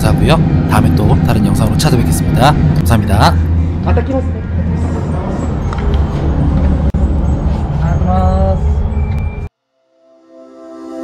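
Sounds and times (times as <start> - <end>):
low rumble of street noise: 0.0 - 9.5.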